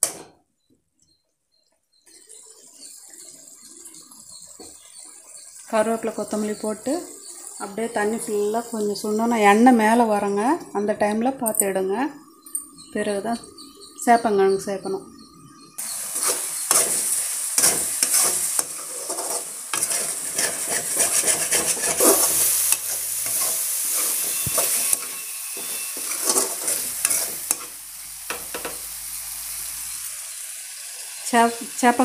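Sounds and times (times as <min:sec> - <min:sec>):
spices sizzling in oil: 0:01.6 - 0:10.9, 0:15.8 - 0:32.0
spoon scraping pan: 0:15.8 - 0:28.9.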